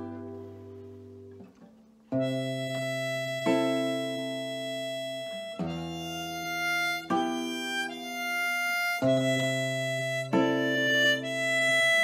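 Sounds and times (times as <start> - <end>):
classical guitar chords: 0.0 - 12.0
harmonica melody: 2.1 - 12.0.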